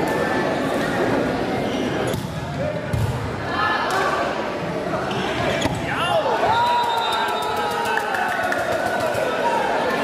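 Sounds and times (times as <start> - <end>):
crowd voices calling out: 2.6 - 10.0.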